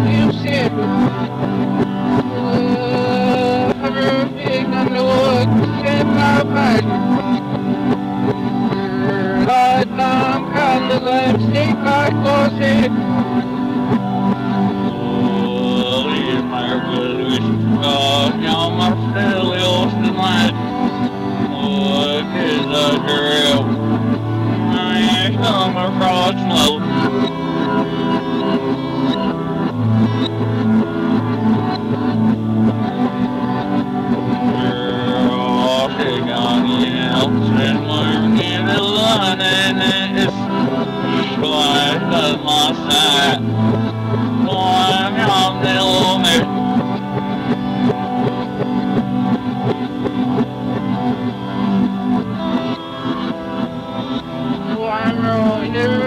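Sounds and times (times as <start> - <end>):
lo-fi music from cassette tape: 0.0 - 56.0
plucked string: 0.0 - 56.0.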